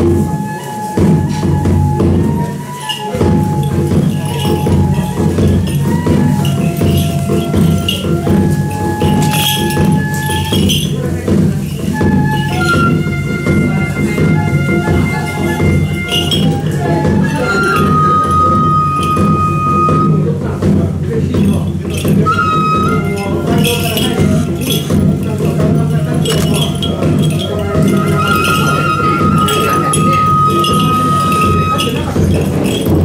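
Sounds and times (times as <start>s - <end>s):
bamboo flute long notes: 0.0s - 20.6s, 21.8s - 33.0s
small bells jingling: 0.0s - 33.0s
metallic chinking: 2.0s - 19.9s, 21.3s - 33.0s
dense drumming: 3.1s - 33.0s.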